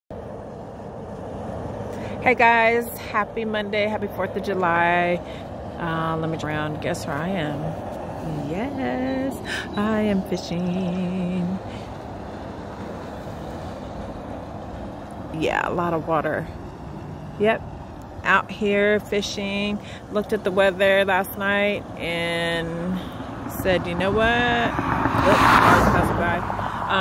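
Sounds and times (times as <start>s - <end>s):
distant freeway traffic hum: 0.1s - 27.0s
wind buffeting microphone: 0.2s - 27.0s.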